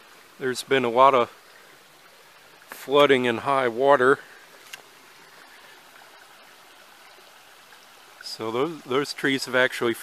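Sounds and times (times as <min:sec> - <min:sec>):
creek water rushing: 0:00.0 - 0:10.0.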